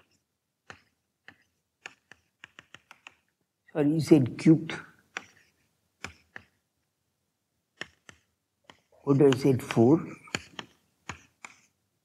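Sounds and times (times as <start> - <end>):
chalk tapping on chalkboard: 0.0 - 3.3, 5.1 - 6.6, 7.8 - 11.7
man speaking: 3.7 - 5.0, 9.0 - 10.4.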